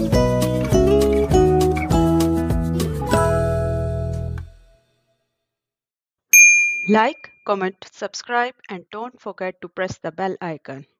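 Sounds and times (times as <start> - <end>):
bright bell ding: 6.3 - 7.4.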